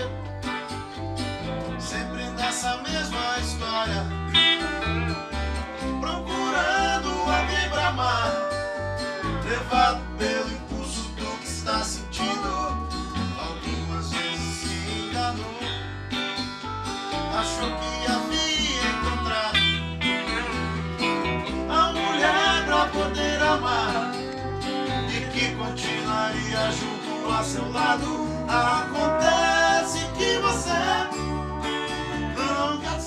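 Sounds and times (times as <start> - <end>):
lap steel guitar sliding notes: 0.0 - 10.5, 16.6 - 33.0
country band playing: 0.0 - 33.0.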